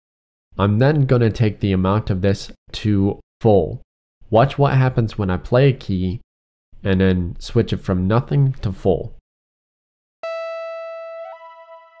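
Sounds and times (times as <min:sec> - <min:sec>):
held synthesizer note: 0:10.2 - 0:12.0.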